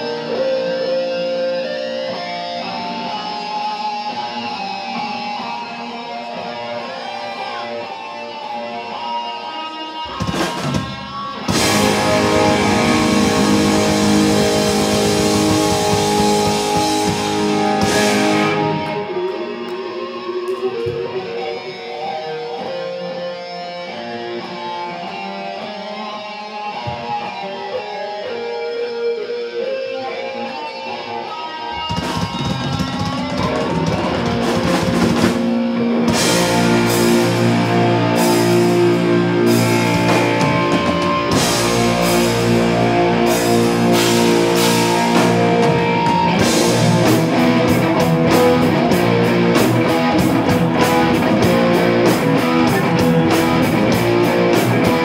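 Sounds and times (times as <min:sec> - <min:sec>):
live rock band playing: 0:00.0 - 0:55.0
ringing electric guitars: 0:00.0 - 0:55.0.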